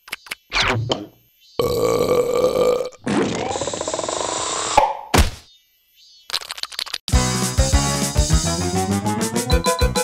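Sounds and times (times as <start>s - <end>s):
cartoon burp through a straw: 1.6s - 4.1s.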